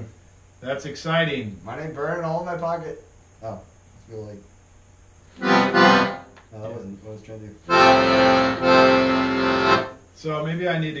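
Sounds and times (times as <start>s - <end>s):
accordion chords: 5.3s - 6.4s, 7.6s - 10.0s.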